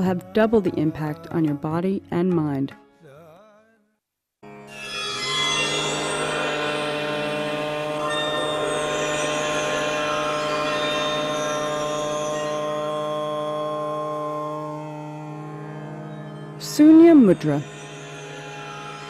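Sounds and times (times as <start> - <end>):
music of sustained held tones: 4.4 - 19.0.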